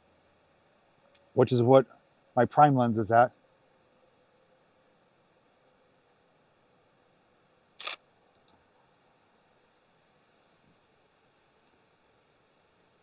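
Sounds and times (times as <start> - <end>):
camera shutter double click: 7.8 - 8.0.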